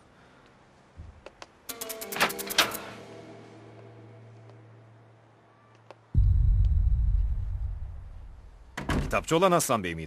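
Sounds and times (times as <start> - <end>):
background music drone: 1.7 - 8.6.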